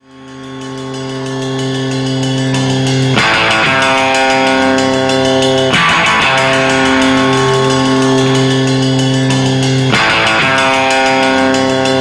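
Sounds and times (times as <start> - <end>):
distorted electric guitar note: 0.0 - 12.0.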